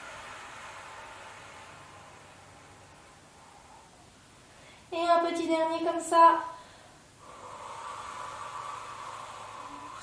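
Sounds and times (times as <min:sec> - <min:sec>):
woman exhaling through mouth: 0:00.0 - 0:03.9, 0:07.2 - 0:10.0.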